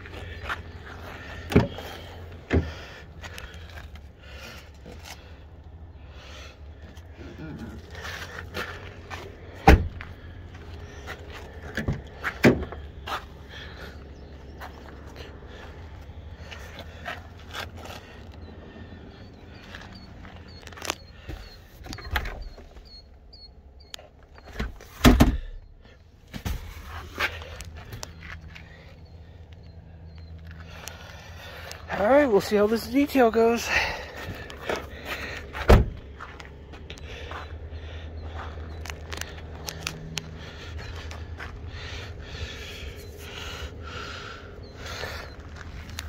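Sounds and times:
car door latch clunk: 35.7s - 36.0s.

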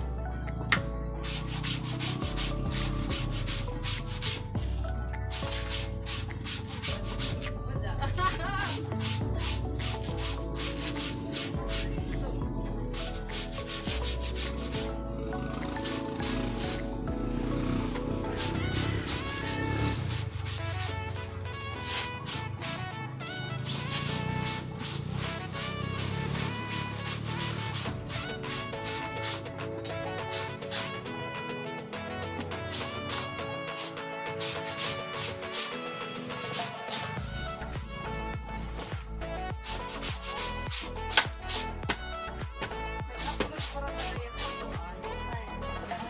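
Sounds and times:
background music with melody: 0.0s - 46.0s
rhythmic hand scraping: 1.2s - 46.0s.

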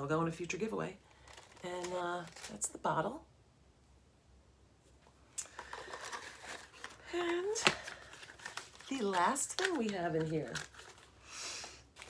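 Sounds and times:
packaging crinkling: 1.1s - 2.8s, 5.4s - 12.0s.

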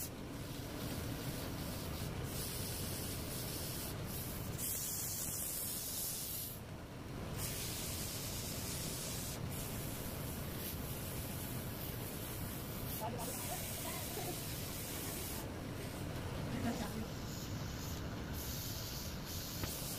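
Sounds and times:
sandpaper hissing on spinning wood: 0.0s - 6.6s, 7.4s - 15.5s, 16.6s - 19.9s.

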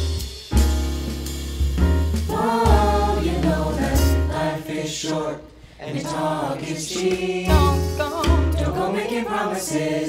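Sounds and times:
upright bass notes: 0.0s - 4.4s, 7.5s - 8.8s
jazz band accompanying: 0.0s - 4.5s, 7.0s - 9.0s
vocal ensemble singing in harmony: 2.3s - 10.0s.

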